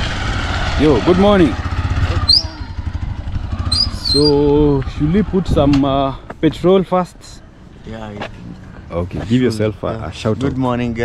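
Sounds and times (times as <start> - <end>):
motorcycle engine idling: 0.4 - 5.2.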